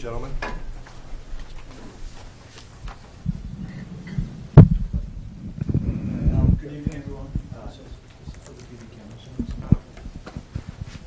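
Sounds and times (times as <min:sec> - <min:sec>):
low thumps and knocks: 0:02.8 - 0:06.6.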